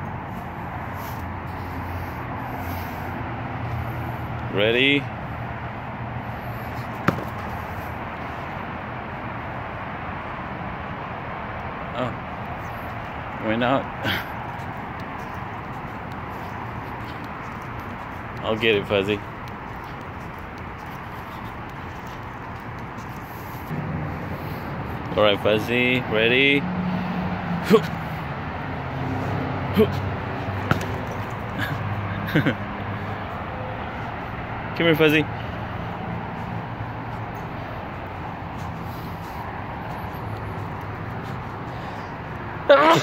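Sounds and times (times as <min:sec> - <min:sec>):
low outdoor background hum: 0:00.0 - 0:43.0
sharp knock: 0:07.1 - 0:07.4.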